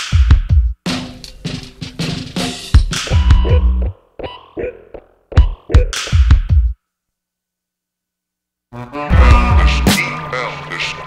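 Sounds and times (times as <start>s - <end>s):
hip-hop drum beat: 0.0s - 4.0s, 5.3s - 6.8s, 9.1s - 10.0s.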